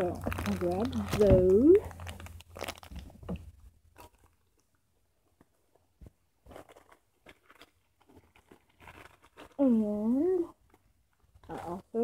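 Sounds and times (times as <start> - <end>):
faint clicks and rustles of items: 0.0 - 12.0.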